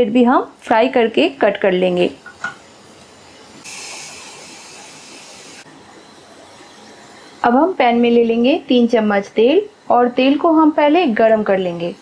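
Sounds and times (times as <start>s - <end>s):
high-pitched hiss: 3.0s - 12.0s.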